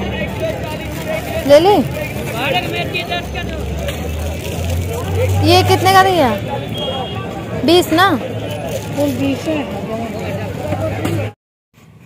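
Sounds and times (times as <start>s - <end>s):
people talking: 0.0s - 11.3s
low rumble of traffic: 0.0s - 12.0s.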